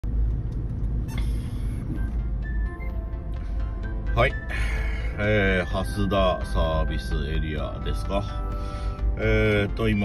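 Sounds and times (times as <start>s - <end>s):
low rumble of vehicles: 0.0s - 10.0s.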